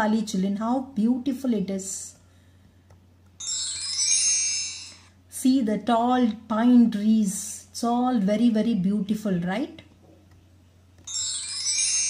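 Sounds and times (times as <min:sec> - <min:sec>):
high-pitched chiming: 0:03.4 - 0:05.2, 0:11.0 - 0:12.0.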